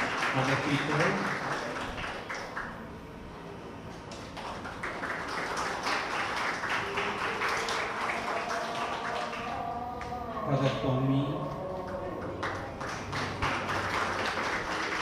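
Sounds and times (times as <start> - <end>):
audience applause: 0.0 - 2.8, 4.3 - 9.7, 12.4 - 15.0.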